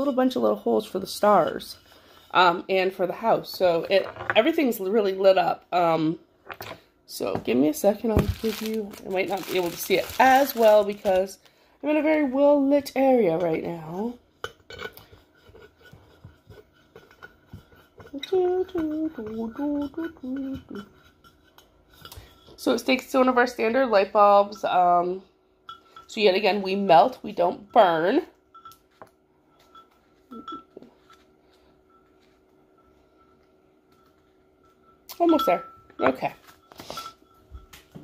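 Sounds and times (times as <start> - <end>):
ceramic clicks and clinks: 29.6 - 31.2.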